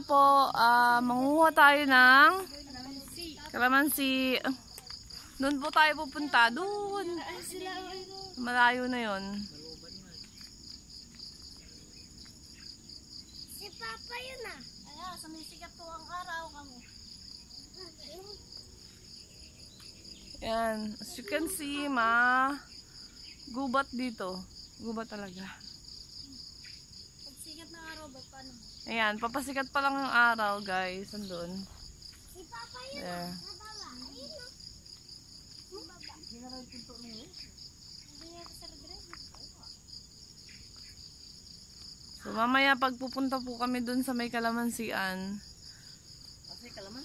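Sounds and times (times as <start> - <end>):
insects trilling: 0.0 - 47.0.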